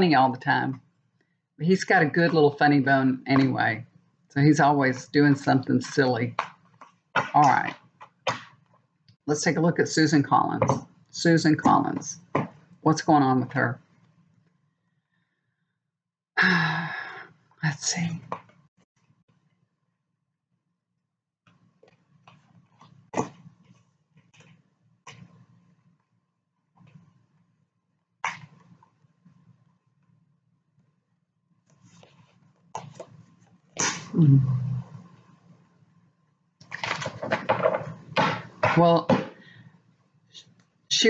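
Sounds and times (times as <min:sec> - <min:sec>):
woman sighing: 0:16.4 - 0:17.3, 0:34.1 - 0:35.0
short falling vocal sound: 0:33.8 - 0:35.0.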